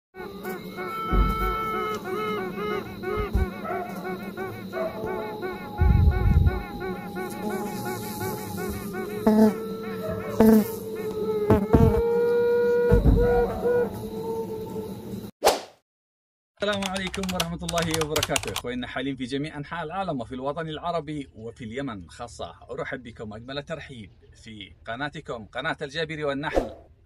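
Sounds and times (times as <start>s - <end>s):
bee buzzing sound effect: 0.2s - 12.2s
deep thumps: 1.0s - 2.0s, 3.1s - 3.6s, 5.8s - 7.1s, 12.9s - 13.5s.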